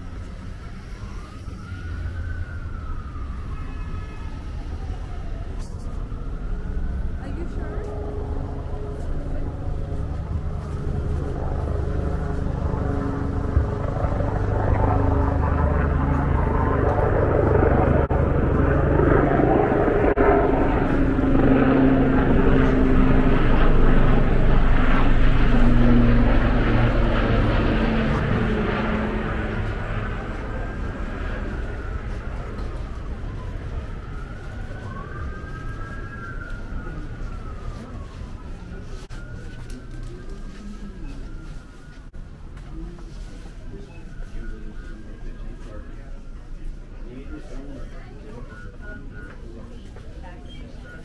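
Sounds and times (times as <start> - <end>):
street traffic engine drone: 0.0 - 51.0.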